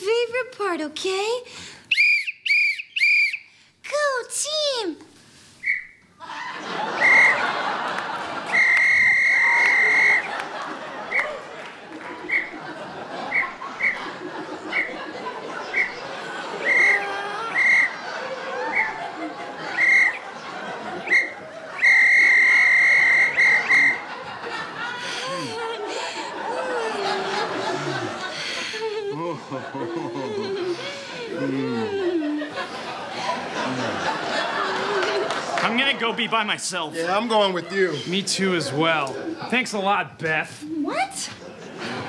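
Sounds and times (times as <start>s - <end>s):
whistle blasts: 1.9s - 3.5s, 5.6s - 6.0s, 7.0s - 7.5s, 8.5s - 10.3s, 15.7s - 16.0s, 16.6s - 18.0s, 19.7s - 20.2s, 21.1s - 24.2s.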